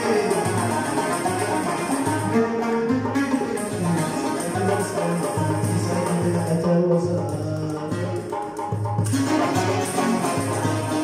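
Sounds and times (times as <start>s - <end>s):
frame drum beat: 0.0s - 11.0s
plucked string ensemble: 0.0s - 11.0s.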